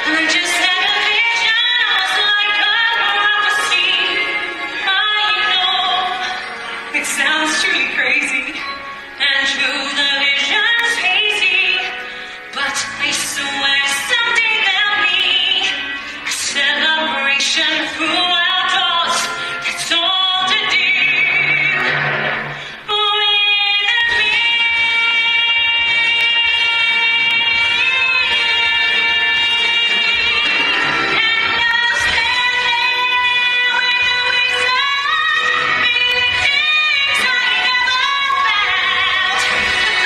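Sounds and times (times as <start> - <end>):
woman singing: 0.0 - 22.0, 22.8 - 40.0
orchestral accompaniment: 0.0 - 40.0.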